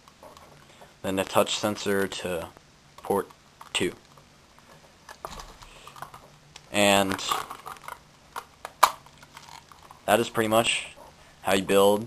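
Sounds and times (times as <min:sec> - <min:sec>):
handling noise: 0:03.0 - 0:10.1.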